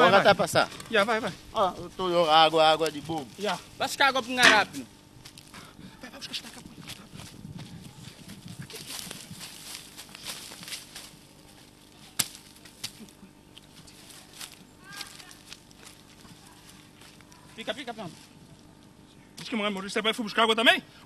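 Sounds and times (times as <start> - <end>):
rustling among brush: 5.1 - 19.1.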